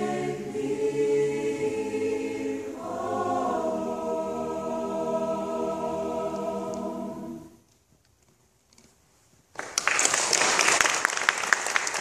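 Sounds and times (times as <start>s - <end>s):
choir singing a cappella: 0.0s - 7.6s.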